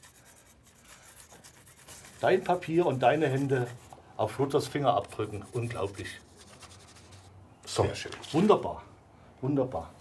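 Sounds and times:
graphite scratching on paper: 0.0 - 7.3.

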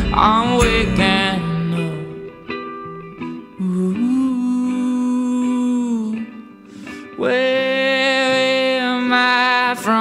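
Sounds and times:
picked guitar notes: 0.0 - 10.0.

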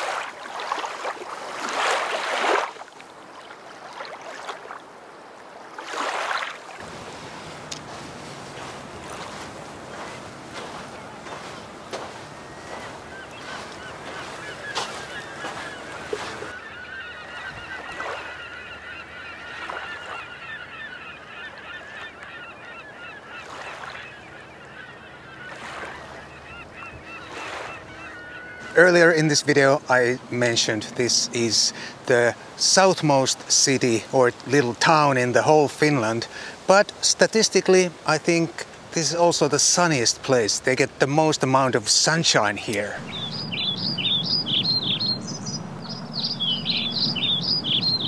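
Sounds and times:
birds honking: 6.8 - 36.6, 41.4 - 48.0
steady outdoor hiss: 27.9 - 48.0.

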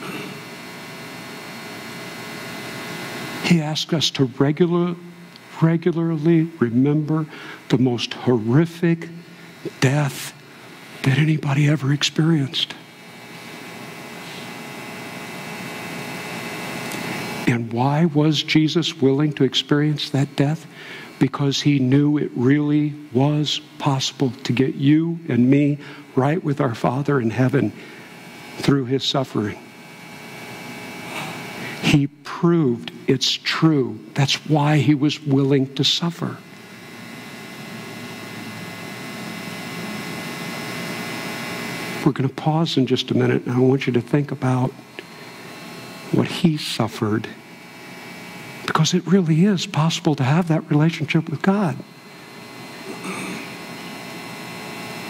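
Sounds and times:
faint hum: 0.0 - 55.0
room tone hiss: 0.0 - 55.0.

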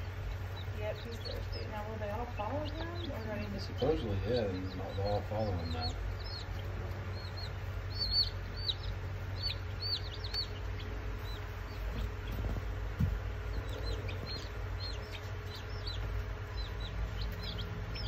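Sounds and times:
baby chicks peeping: 0.0 - 18.0
steady low hum: 0.0 - 18.0.

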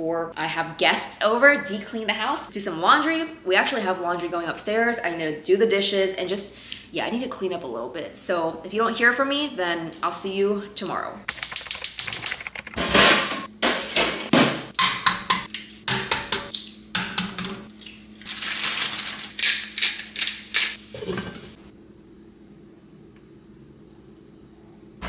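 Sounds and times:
utensils and dishes clattering: 11.4 - 17.7, 19.6 - 21.6
eggs cracking into frying pan: 17.8 - 21.2
steady low hum: 20.8 - 25.0.

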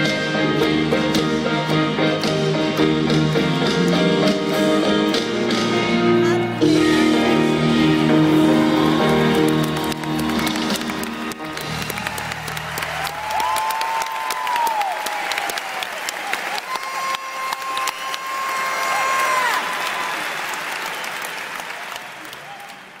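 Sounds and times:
audience applauding: 7.9 - 23.0.

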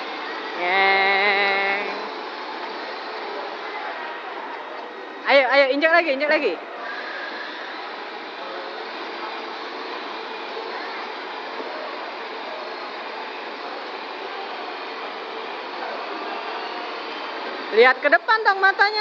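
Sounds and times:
toy electric motor whirring: 6.8 - 18.1.

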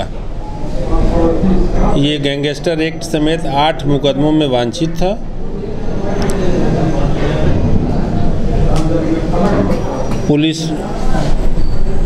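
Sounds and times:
low rumbling background noise: 0.0 - 12.0
man speaking: 0.8 - 5.3.

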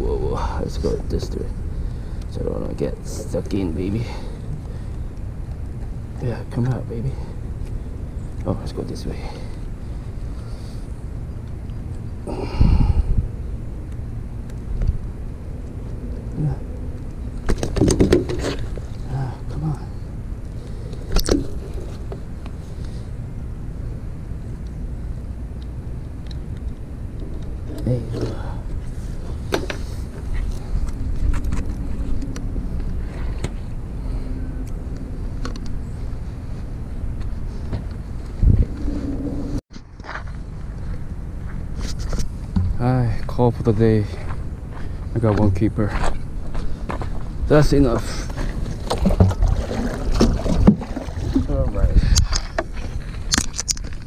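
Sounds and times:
wind rumble on microphone: 9.7 - 20.4, 21.0 - 39.6, 40.4 - 54.0.

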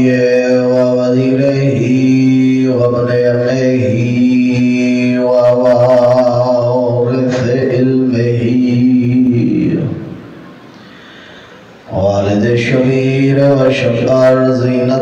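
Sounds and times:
man chanting recitation: 0.0 - 10.2, 11.9 - 15.0.

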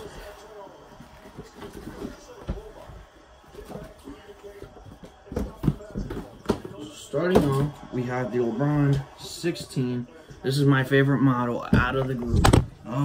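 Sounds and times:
cardboard boxes knocking and scraping: 4.9 - 7.8.

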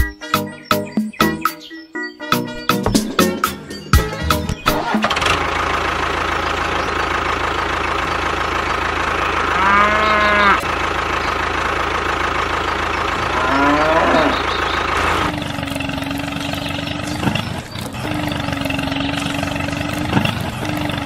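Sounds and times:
tractor engine running: 2.6 - 21.0
cow mooing: 9.4 - 10.7, 13.2 - 16.2.

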